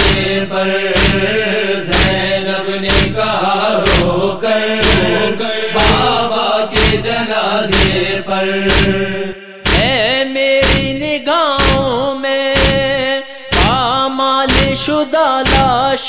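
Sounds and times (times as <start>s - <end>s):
heavy thumps beating: 0.0s - 14.9s, 15.5s - 15.9s
voices chanting wordless refrain: 0.0s - 16.0s.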